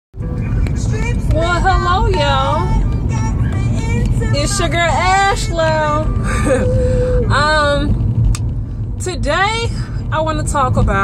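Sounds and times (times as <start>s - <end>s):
car driving rumble inside cabin: 0.2s - 11.0s
woman's voice: 7.2s - 8.0s, 9.0s - 11.0s.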